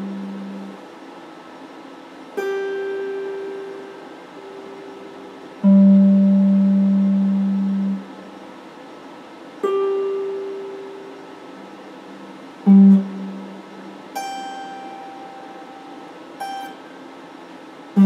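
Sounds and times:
electric guitar plucked notes: 0.0 - 0.8, 2.4 - 8.2, 9.6 - 11.4, 12.6 - 16.9.

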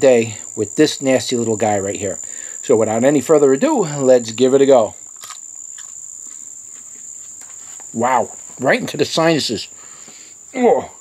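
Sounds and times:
high-pitched insect trill: 0.0 - 11.0.

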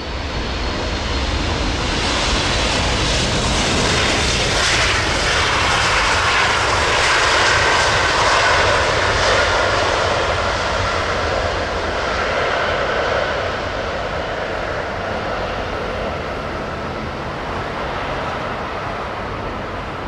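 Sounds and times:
jet engine rush: 0.0 - 20.0.

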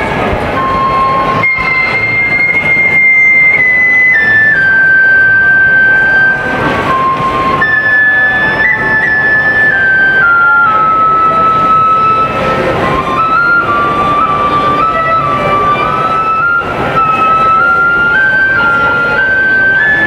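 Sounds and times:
bamboo flute melody: 0.0 - 20.0.

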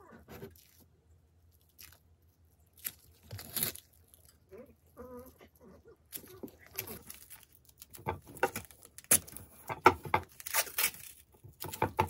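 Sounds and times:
masking tape squeaking and ripping: 2.8 - 4.4, 10.3 - 11.7.

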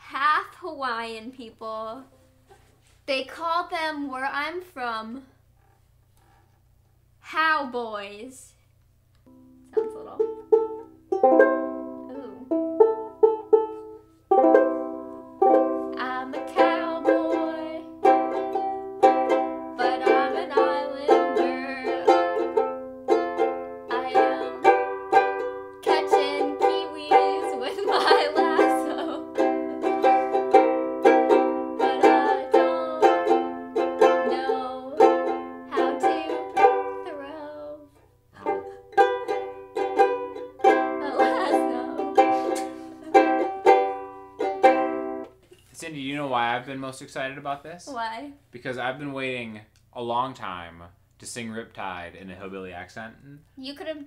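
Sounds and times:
banjo ukulele playing: 9.3 - 37.8, 38.4 - 45.7.

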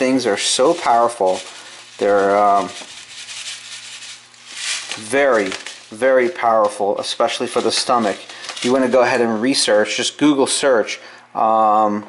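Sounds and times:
seeds pattering on plastic tray: 0.0 - 9.0.

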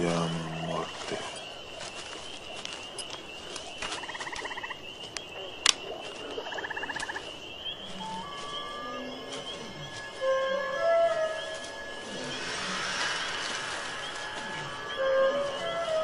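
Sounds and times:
high chirring drone: 6.5 - 16.0
rapid rattling trills: 9.0 - 16.0.

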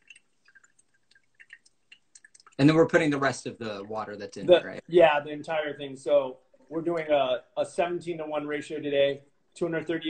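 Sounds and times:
water trickling onto coffee grounds: 0.0 - 4.8.

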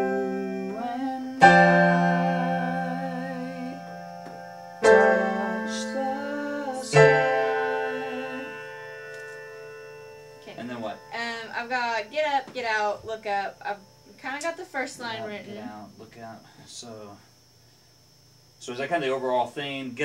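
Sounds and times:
electronic keyboard chords: 0.0 - 11.6
person speaking: 10.4 - 12.9.

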